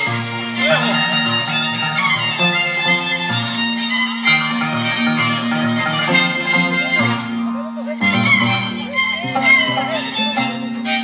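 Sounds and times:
plucked string notes: 0.0s - 11.0s
violin playing lively tune: 0.0s - 11.0s.

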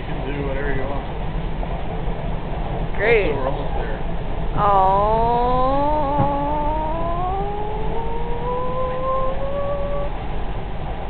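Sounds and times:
low rumble inside train car: 0.0s - 11.0s.

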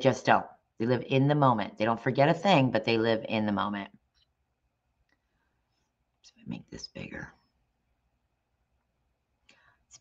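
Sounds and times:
person speaking: 0.0s - 4.0s, 6.2s - 7.4s
faint breath: 9.4s - 10.0s.

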